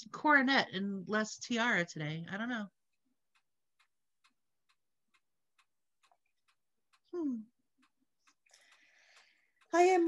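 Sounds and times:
faint even ticking: 0:02.4 - 0:10.0.

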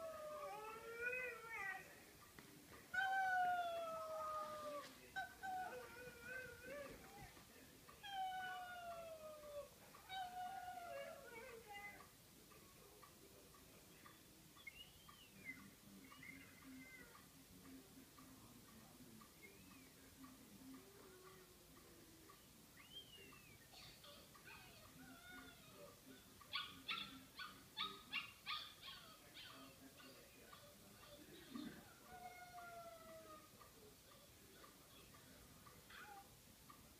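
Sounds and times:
dog howling: 0:00.0 - 0:01.9, 0:32.0 - 0:33.5
dog whining: 0:23.7 - 0:29.7
dog yipping: 0:26.5 - 0:29.7, 0:35.9 - 0:36.3.

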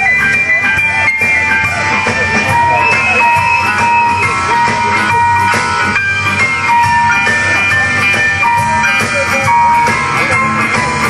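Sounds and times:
bending guitar lines: 0:01.4 - 0:06.6
live band playing instrumental: 0:01.5 - 0:07.2.

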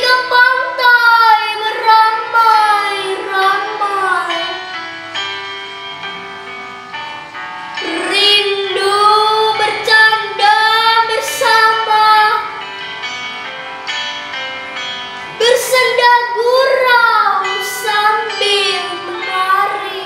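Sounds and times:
girl singing: 0:00.0 - 0:04.6, 0:07.8 - 0:12.6, 0:15.3 - 0:20.0
instrumental backing track: 0:00.0 - 0:20.0.

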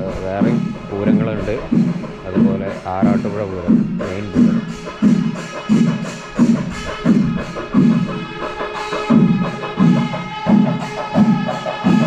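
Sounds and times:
cymbals ringing: 0:00.0 - 0:12.0
heavy low drum strokes: 0:00.0 - 0:12.0.

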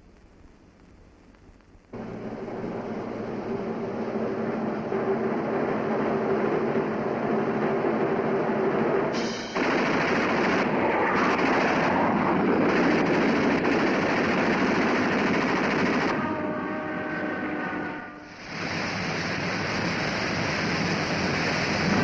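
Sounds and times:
rocket engine roar: 0:01.9 - 0:16.5, 0:18.3 - 0:22.0.

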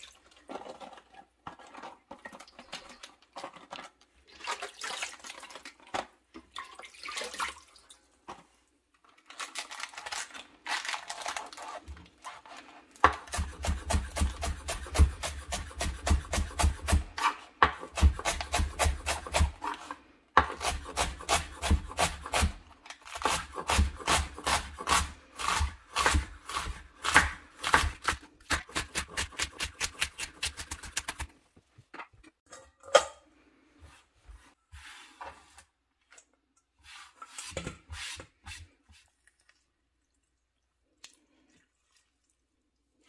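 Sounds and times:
knife shredding cabbage on board: 0:11.6 - 0:31.4
hand sweeping on cutting board: 0:33.8 - 0:35.7, 0:36.8 - 0:38.7.

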